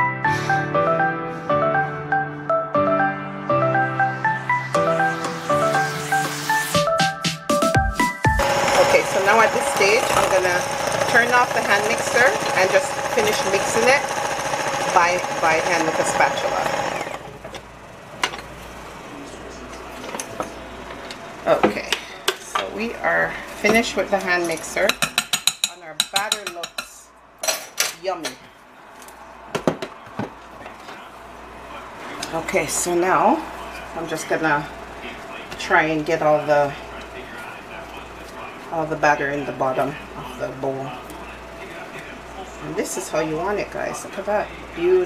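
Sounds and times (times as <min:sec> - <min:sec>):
electric hand mixer whining: 0:08.3 - 0:17.4.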